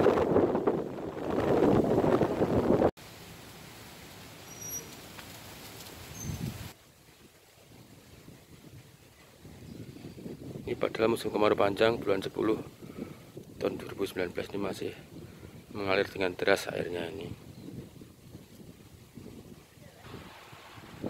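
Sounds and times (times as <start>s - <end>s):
wind buffeting microphone: 0.0s - 2.9s, 6.1s - 6.8s, 7.6s - 21.0s
faint outdoor hiss: 3.0s - 21.0s.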